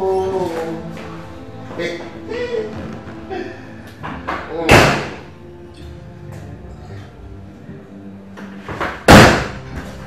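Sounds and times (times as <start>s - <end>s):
background music: 0.0s - 10.0s
door slamming: 4.1s - 5.2s.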